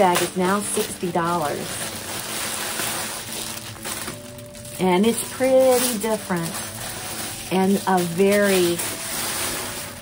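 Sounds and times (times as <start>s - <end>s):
handbag rustling: 0.0s - 10.0s.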